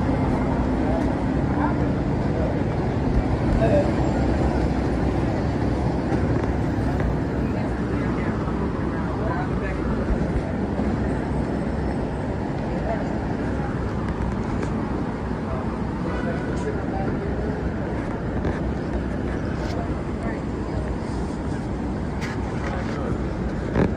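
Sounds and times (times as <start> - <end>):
pedestrian chatter: 0.0 - 23.9
traffic hum: 0.0 - 23.9.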